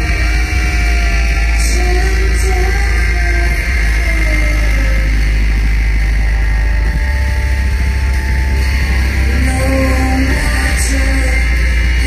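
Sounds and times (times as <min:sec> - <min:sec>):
live industrial metal band: 0:00.0 - 0:12.0.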